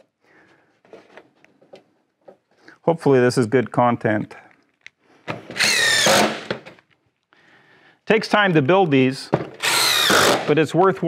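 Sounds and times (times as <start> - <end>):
cordless drill driving screw: 5.5 - 6.6, 9.6 - 10.5.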